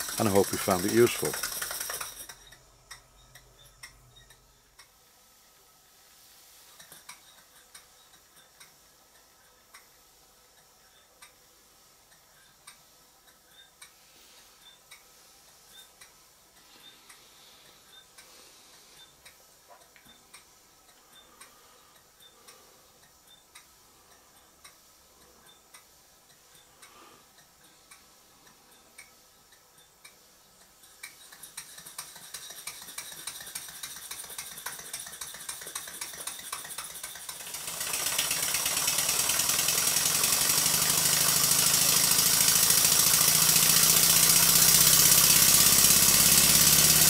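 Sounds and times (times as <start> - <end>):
model steam engine ticking: 0.0 - 4.9, 14.6 - 47.0
faint air hiss: 0.0 - 47.0.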